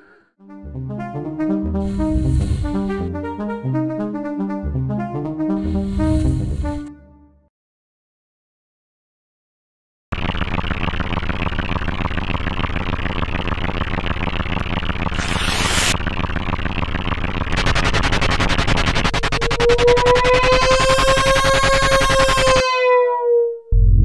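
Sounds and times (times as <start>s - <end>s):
held synthesizer note: 0.4s - 7.5s, 19.2s - 24.0s
loud synthesizer buzz: 0.6s - 6.8s, 15.1s - 22.8s
fast electronic pulsing: 10.2s - 22.6s.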